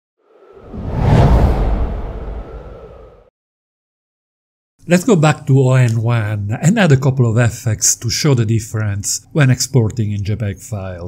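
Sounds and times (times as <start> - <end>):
whoosh with low rumble: 0.2 - 3.3.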